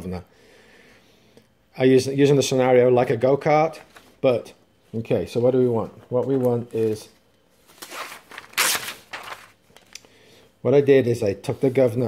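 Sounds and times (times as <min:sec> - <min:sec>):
paper page flipping: 0:07.7 - 0:10.0.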